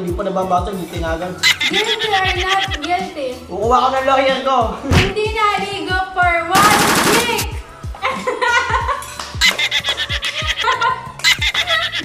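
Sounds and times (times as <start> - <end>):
background music with a beat: 0.0 - 12.0
woman laughing: 1.4 - 3.1, 8.0 - 12.0.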